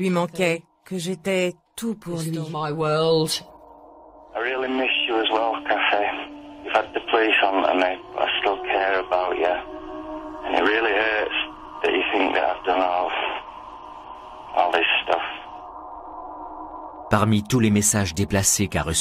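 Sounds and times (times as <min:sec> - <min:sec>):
speech over telephone: 0:04.4 - 0:09.6.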